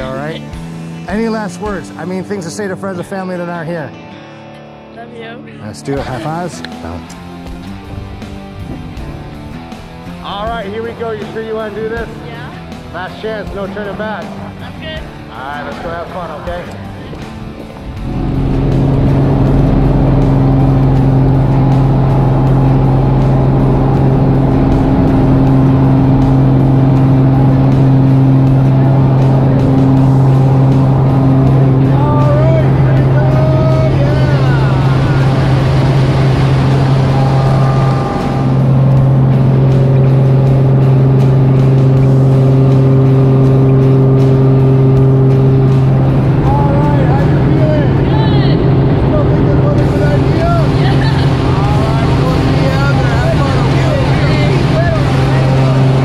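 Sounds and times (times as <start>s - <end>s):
propeller aircraft engine drone: 0.0s - 4.4s, 5.9s - 56.0s.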